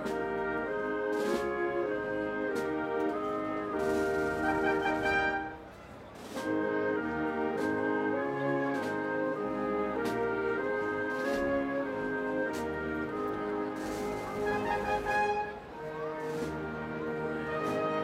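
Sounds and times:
brass band playing a march: 0:00.0 - 0:18.0.

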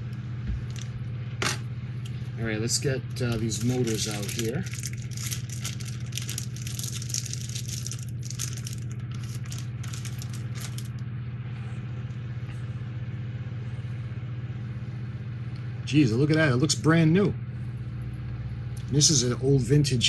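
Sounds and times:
steady low hum: 0:00.0 - 0:20.0
packaging crinkling and rattling: 0:03.2 - 0:11.0.

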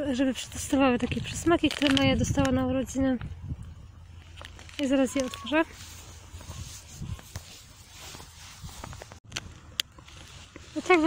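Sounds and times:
plastic pouch rustling and crackling: 0:00.9 - 0:02.8, 0:04.1 - 0:11.0.

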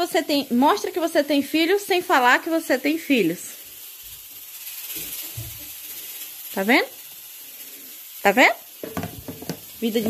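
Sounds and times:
steam hissing from pot: 0:00.0 - 0:10.0
plastic lid thuds: 0:08.8 - 0:09.6.

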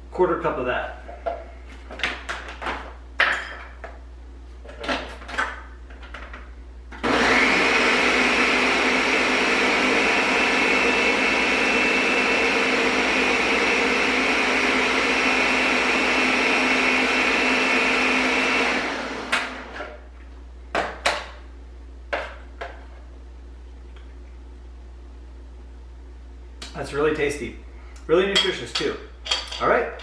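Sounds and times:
blender whining: 0:07.0 - 0:20.0.

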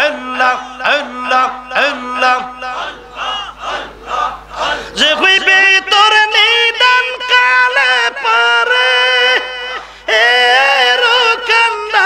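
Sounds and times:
group of men chanting: 0:00.0 - 0:05.8.

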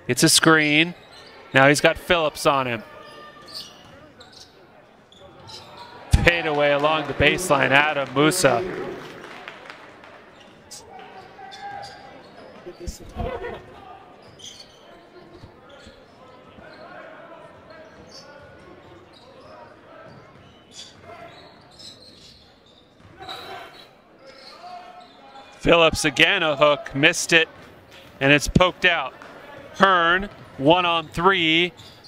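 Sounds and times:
voices of players and spectators: 0:00.0 - 0:32.0.

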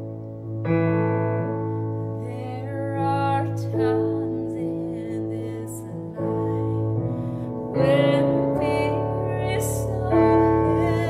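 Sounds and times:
electronic keyboard piano chords: 0:00.0 - 0:11.0
woman singing: 0:02.2 - 0:11.0.

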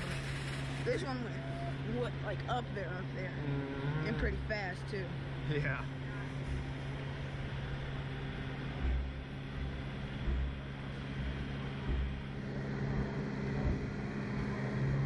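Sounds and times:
low machine hum: 0:00.0 - 0:15.0
short low rumbles: 0:00.0 - 0:15.0.

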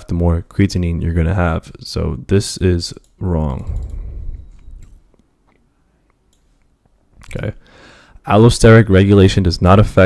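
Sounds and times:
computer mouse clicks: 0:03.0 - 0:07.4
low rumble: 0:03.6 - 0:05.0.

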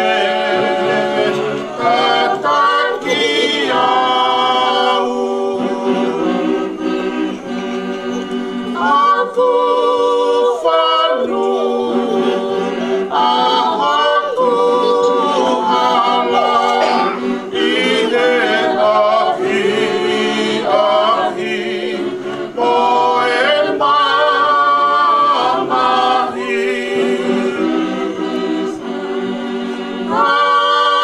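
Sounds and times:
congregation singing a hymn: 0:00.0 - 0:31.0.

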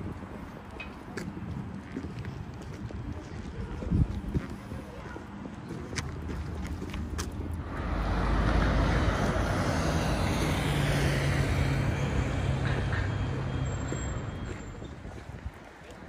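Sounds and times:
road traffic passing: 0:00.0 - 0:16.0
low engine hum: 0:06.4 - 0:14.8.

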